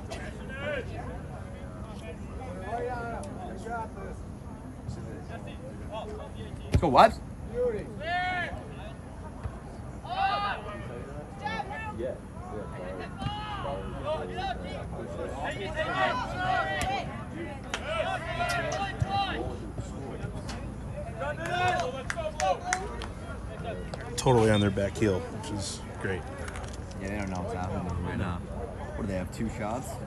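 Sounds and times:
crowd chatter: 0.0 - 30.0
people shouting: 15.7 - 17.1, 17.8 - 19.4.

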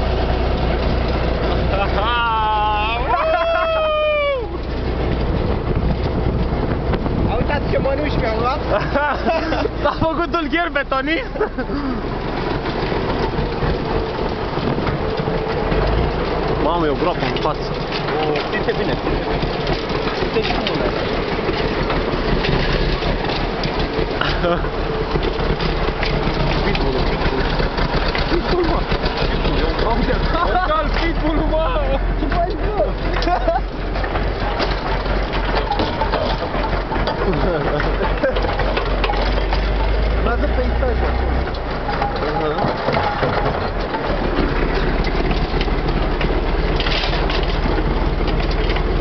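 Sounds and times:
truck body rattling: 0.0 - 49.0
truck engine running: 0.0 - 49.0.

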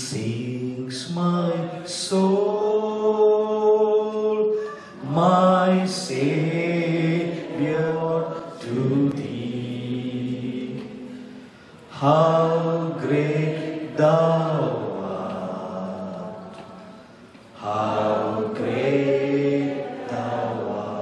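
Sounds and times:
man singing a slow hymn: 0.0 - 21.0.

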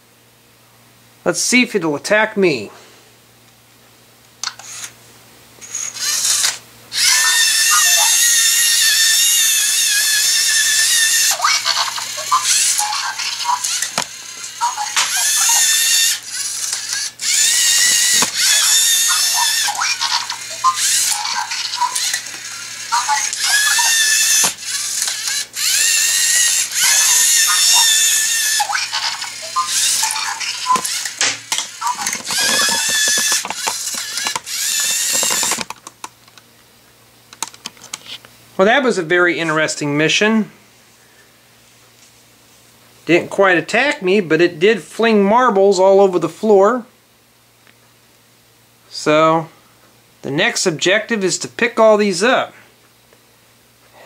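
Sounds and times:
servo motors whining: 5.6 - 35.7
gear clicks: 23.0 - 36.0.

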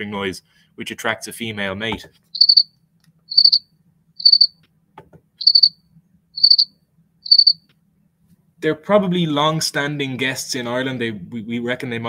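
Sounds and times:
cricket chirping: 2.4 - 2.7, 3.3 - 4.6, 5.4 - 5.8, 6.4 - 7.6.

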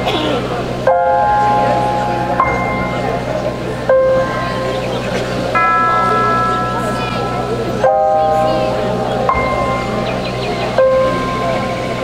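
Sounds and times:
ringing bell chime chord: 1.0 - 12.0.

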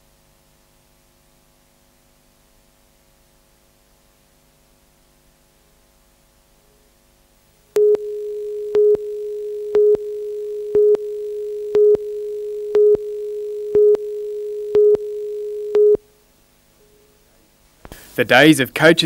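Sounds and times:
louder beeps: 7.8 - 16.0
steady beeping tone: 7.8 - 16.0.

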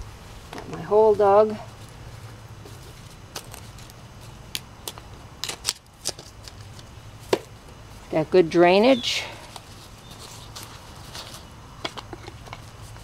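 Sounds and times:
hands scraping soil and mulch: 8.7 - 13.0.

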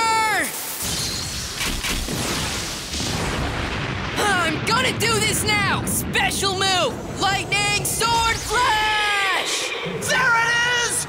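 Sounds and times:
blast-like rush of noise: 6.9 - 11.0.

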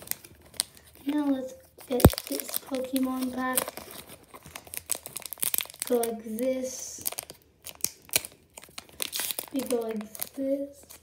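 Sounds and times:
foil wrapper crinkling and tearing: 0.0 - 11.0.

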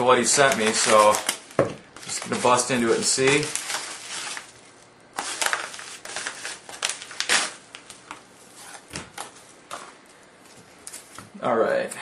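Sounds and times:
packaging crinkling and ripping: 0.1 - 9.9.

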